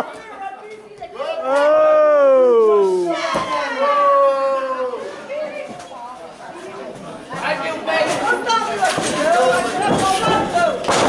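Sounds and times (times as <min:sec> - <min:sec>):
spectators chattering and calling out: 0:00.0 - 0:11.0.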